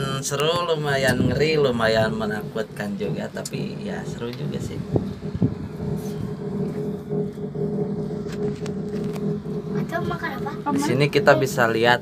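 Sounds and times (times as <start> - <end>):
cable car mechanical hum: 0.0 - 12.0.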